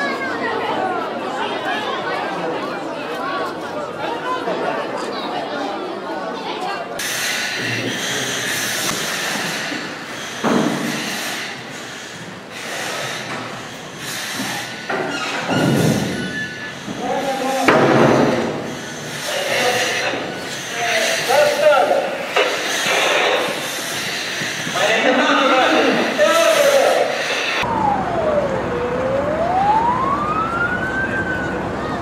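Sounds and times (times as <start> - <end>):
crowd chatter: 0.0 - 32.0
breathing apparatus hissing: 7.0 - 25.1, 25.7 - 27.6.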